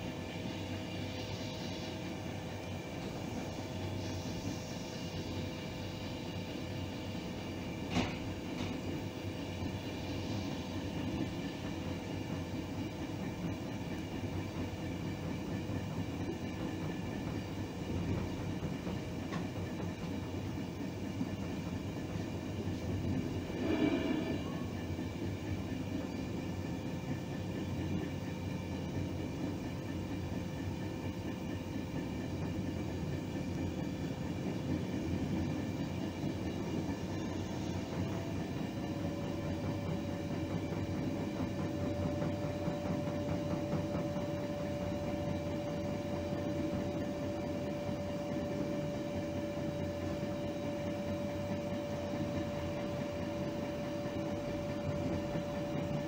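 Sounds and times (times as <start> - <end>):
train wheels rumbling on rail: 0.0 - 56.0.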